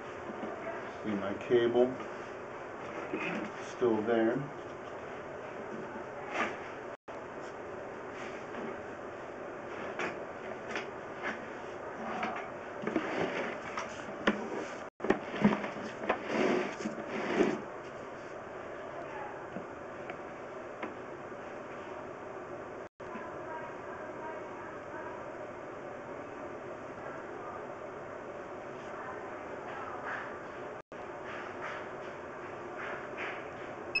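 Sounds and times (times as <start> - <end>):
camera rustling and scraping in drain: 9.8 - 18.4.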